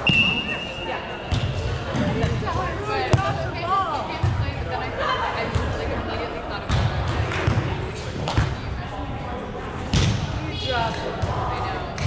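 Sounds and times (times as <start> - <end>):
whistle blowing high note: 0.0 - 0.9.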